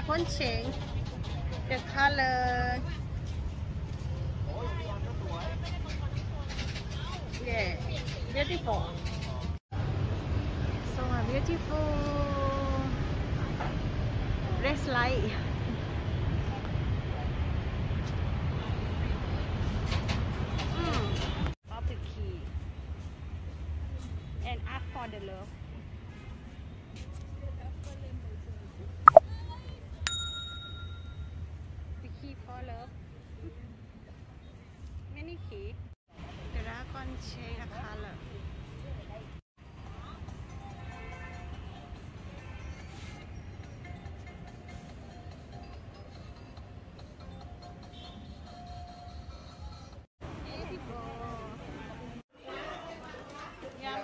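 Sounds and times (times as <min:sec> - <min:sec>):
low city rumble: 0:00.0 - 0:54.0
bright bell ding: 0:30.1 - 0:31.4.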